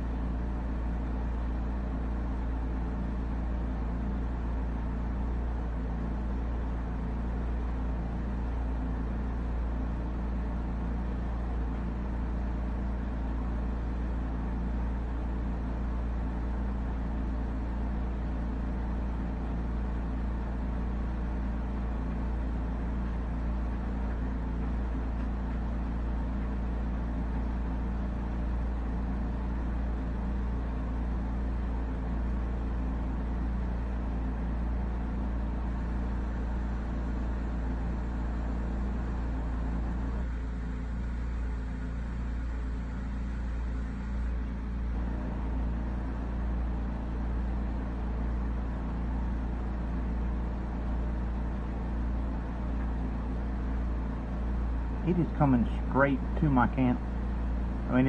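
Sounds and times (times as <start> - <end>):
low mechanical hum: 0.0 - 58.0.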